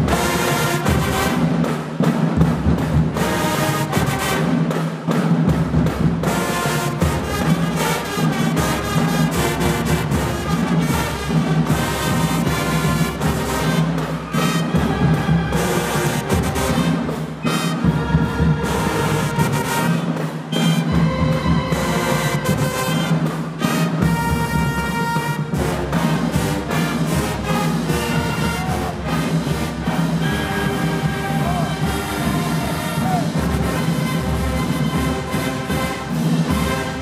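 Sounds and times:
drum strokes: 0.0s - 37.0s
marching band playing: 0.0s - 37.0s.

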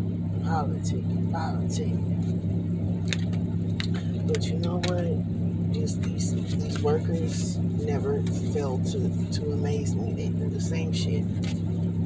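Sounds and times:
car engine humming inside cabin: 0.0s - 12.0s
person speaking: 0.4s - 2.1s, 3.8s - 5.2s, 5.8s - 11.5s.

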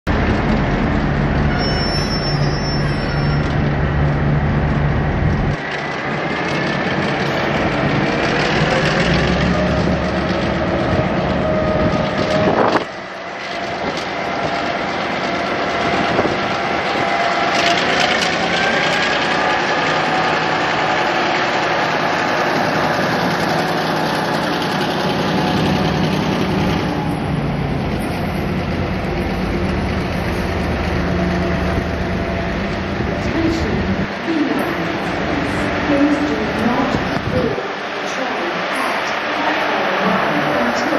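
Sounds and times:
diesel locomotive engine: 0.1s - 40.9s
drawn-out high train tones: 0.2s - 40.9s.

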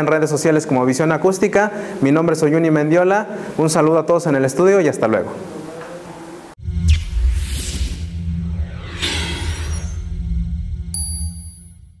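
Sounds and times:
bright ringing ding: 10.9s - 12.0s.

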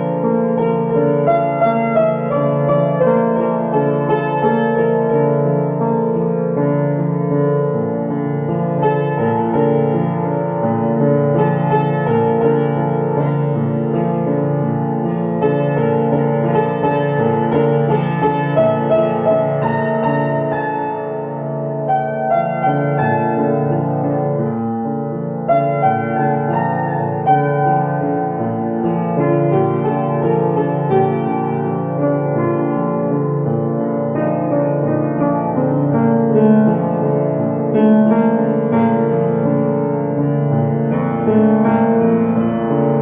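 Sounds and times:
piano music: 0.0s - 43.0s.

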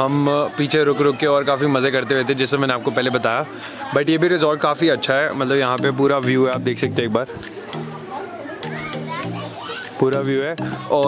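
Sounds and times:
children calling and chattering: 0.0s - 11.0s
music with stepping bass line: 8.6s - 11.0s.

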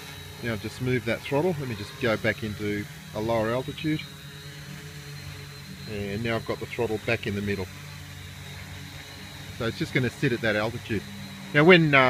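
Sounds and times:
drone propellers humming: 0.0s - 12.0s.

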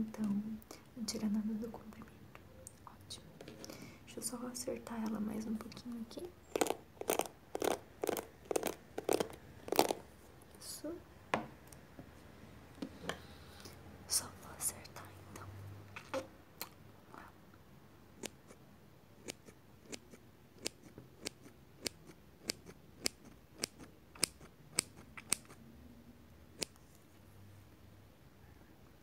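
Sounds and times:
scissors snipping hair: 19.2s - 25.6s.

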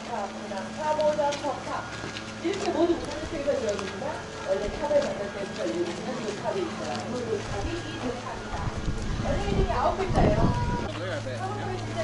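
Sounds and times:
people talking: 0.0s - 12.0s
low thumps and rumbles: 0.9s - 12.0s.

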